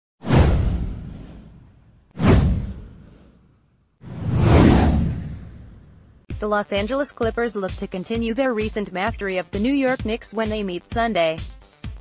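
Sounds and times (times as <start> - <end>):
whoosh sound effect: 0.2 - 6.2
deep low boom: 0.3 - 3.3, 4.1 - 6.2.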